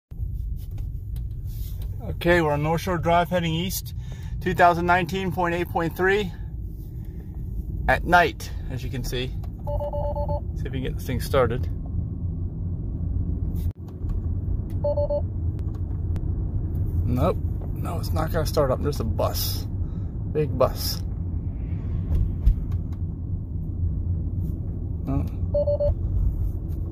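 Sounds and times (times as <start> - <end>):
car cabin road rumble: 0.1 - 26.9.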